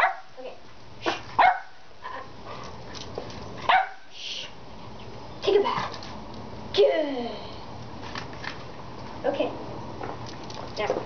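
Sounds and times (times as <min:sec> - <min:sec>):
dog barking: 0:00.0 - 0:00.3, 0:01.4 - 0:01.8, 0:03.7 - 0:04.1.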